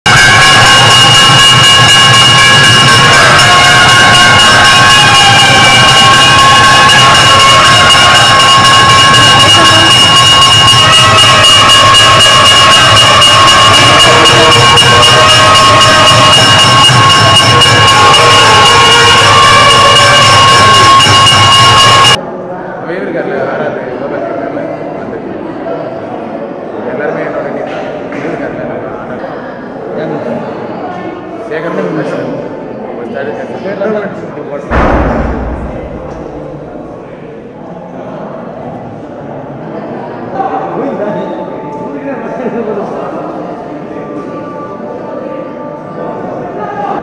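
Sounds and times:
brass hand bell ringing rapidly: 0:00.1 - 0:22.2.

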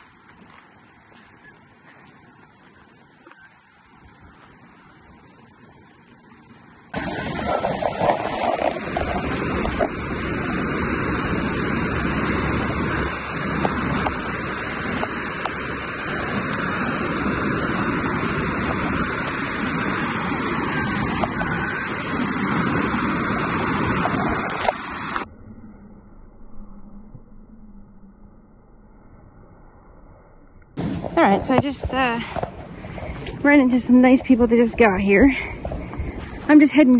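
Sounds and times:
wind buffeting microphone: 0:00.0 - 0:25.2, 0:30.8 - 0:36.9.

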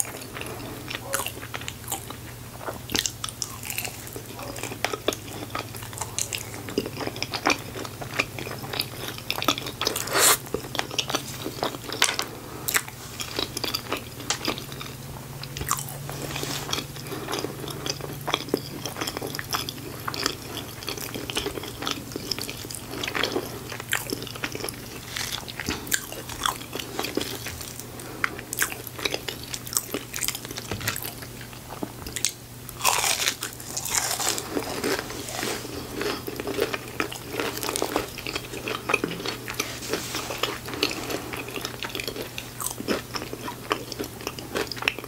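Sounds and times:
wet chewing of crispy food: 0:00.0 - 0:45.0
crunchy bite: 0:09.4 - 0:11.1, 0:32.2 - 0:39.2.

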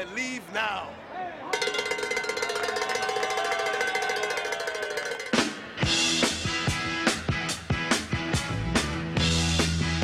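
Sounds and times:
bell ringing rapidly: 0:01.6 - 0:05.9.

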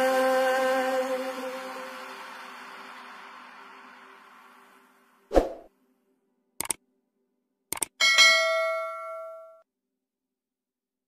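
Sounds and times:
quick double clicks: 0:06.6 - 0:06.8, 0:07.7 - 0:08.0
bell ding: 0:08.0 - 0:09.6.

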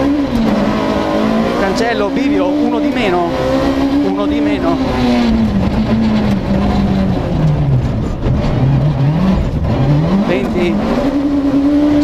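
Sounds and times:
rally car engine: 0:00.0 - 0:12.0
road and gravel noise: 0:00.0 - 0:12.0.

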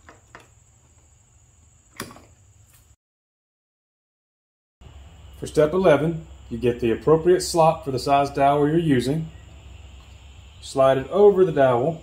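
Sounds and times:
low room hum: 0:04.8 - 0:12.0.

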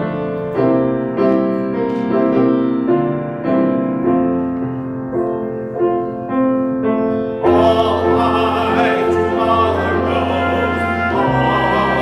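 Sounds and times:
keyboard playing hymn chords: 0:00.0 - 0:12.0.

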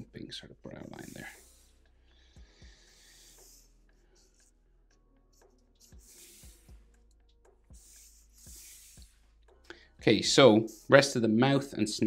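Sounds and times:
marker scratching on paper: 0:00.8 - 0:01.8, 0:02.6 - 0:04.6, 0:05.3 - 0:09.6, 0:10.6 - 0:11.2.

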